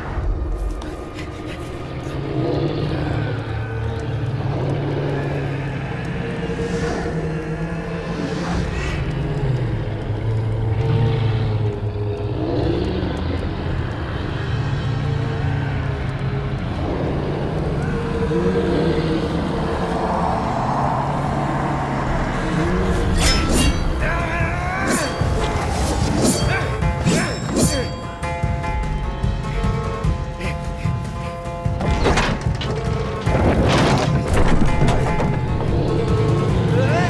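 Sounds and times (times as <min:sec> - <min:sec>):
low rumble: 0:00.0 - 0:27.0
droning tones: 0:00.0 - 0:37.0.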